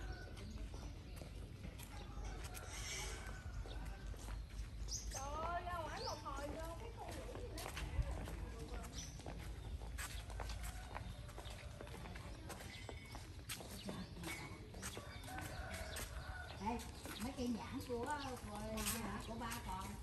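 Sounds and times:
faint voices: 0.0 - 20.0
footsteps on tiled pavement: 0.0 - 20.0.

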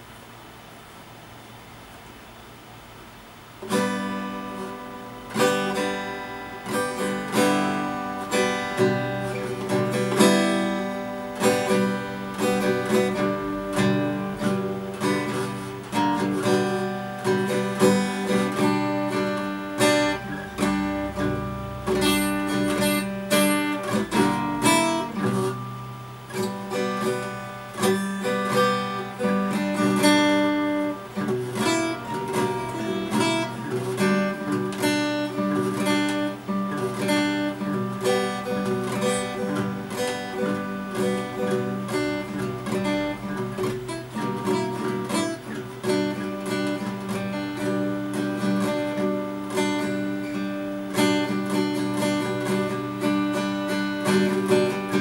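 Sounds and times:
acoustic guitar strummed in chords: 3.0 - 55.0.

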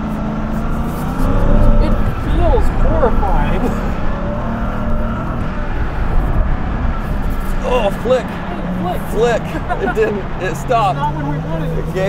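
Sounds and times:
truck engine running under load: 0.0 - 12.0.

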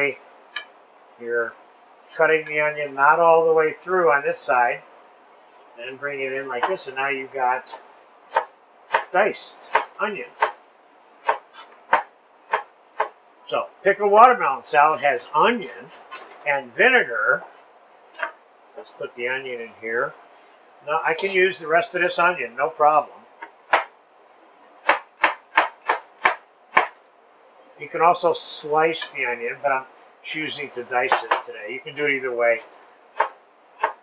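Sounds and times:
knife chopping onion on board: 7.7 - 10.6, 11.2 - 13.2, 23.7 - 23.9, 24.8 - 27.0, 31.1 - 31.5, 32.6 - 34.0.

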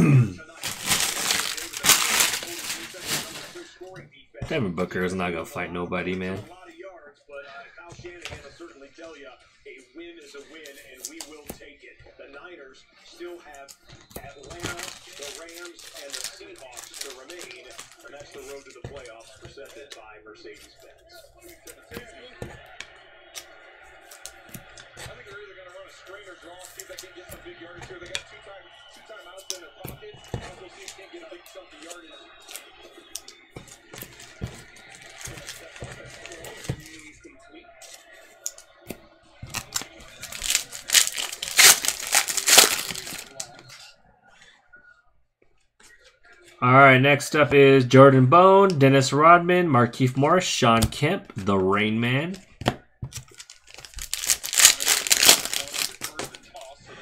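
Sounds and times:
foil wrapper crinkling and tearing: 0.5 - 3.7, 14.5 - 18.8, 34.0 - 37.0, 39.5 - 43.6, 53.1 - 56.6.

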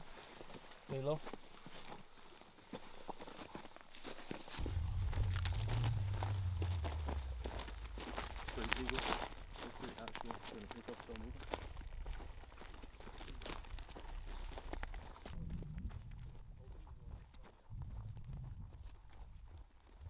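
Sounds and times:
footsteps crunching on rocky ground: 0.0 - 17.6
low rumble: 4.6 - 19.4.

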